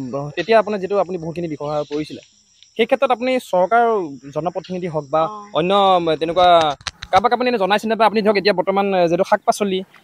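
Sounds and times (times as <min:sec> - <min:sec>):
high-pitched insect drone: 0:00.0 - 0:09.8
person speaking: 0:00.0 - 0:09.8.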